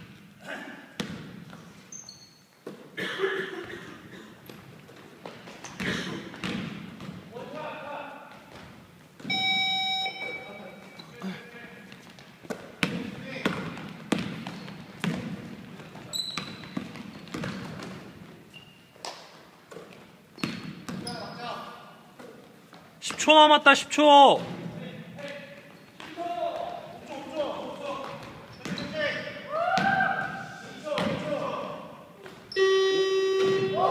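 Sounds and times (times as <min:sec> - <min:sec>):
basketball bouncing on wooden floor: 0:01.0 - 0:01.7, 0:04.5 - 0:07.3, 0:12.2 - 0:18.1, 0:19.7 - 0:21.1, 0:28.0 - 0:28.9.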